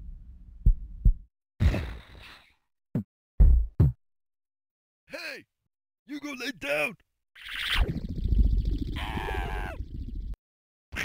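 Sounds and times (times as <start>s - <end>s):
shrill wavering vocal cry: 9.0s - 9.8s.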